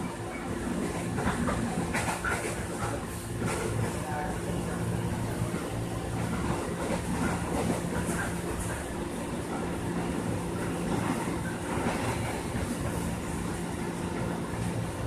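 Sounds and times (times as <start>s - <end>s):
train wheels rumbling on track: 0.0s - 15.0s.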